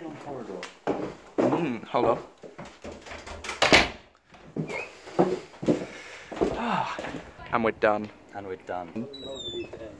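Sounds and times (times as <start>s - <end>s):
door unlatched and opened: 3.3s - 4.0s.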